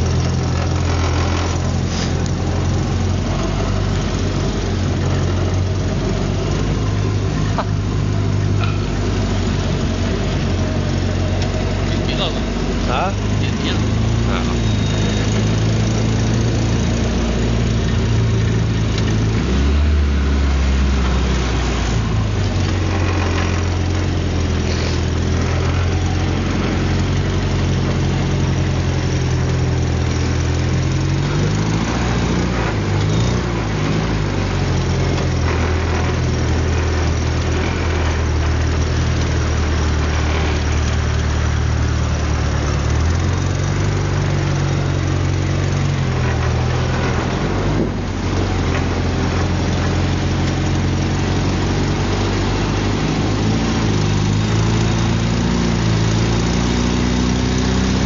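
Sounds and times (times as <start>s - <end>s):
off-road vehicle engine revving: 0.0s - 58.0s.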